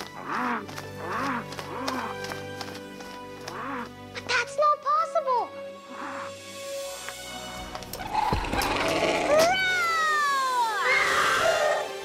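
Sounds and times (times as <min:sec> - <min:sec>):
background music: 0:00.0 - 0:12.0
pterosaur screeching call: 0:08.0 - 0:11.9.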